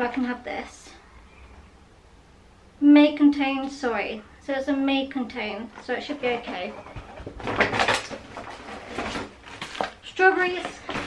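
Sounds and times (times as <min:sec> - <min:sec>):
plastic bag rustling: 0:05.8 - 0:11.0.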